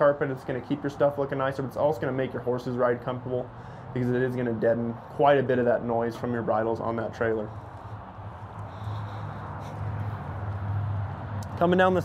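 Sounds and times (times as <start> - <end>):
vehicle engine humming: 3.5 - 12.0.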